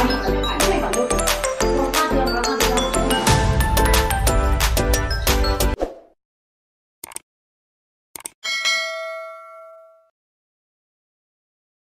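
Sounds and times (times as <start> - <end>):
bell ding: 8.4 - 10.1.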